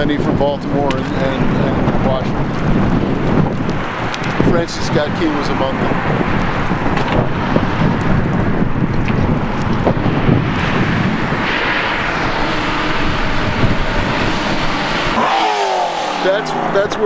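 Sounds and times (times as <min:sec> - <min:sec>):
wind buffeting a microphone: 0:00.0 - 0:17.0.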